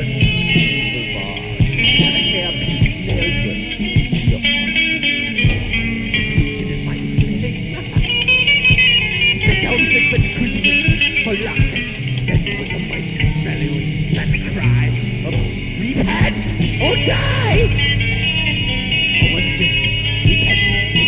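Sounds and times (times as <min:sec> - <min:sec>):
high electric guitar figure: 0:00.0 - 0:21.0
thrash metal song: 0:00.0 - 0:21.0.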